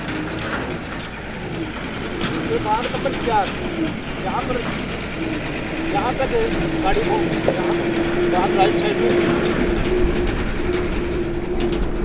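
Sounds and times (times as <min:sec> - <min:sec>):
dove cooing: 0:00.0 - 0:12.0
low outdoor rumble: 0:00.0 - 0:12.0.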